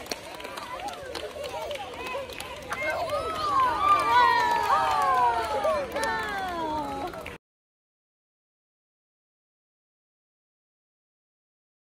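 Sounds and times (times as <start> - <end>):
children chattering: 0.0 - 7.4
children shouting together: 0.9 - 7.2.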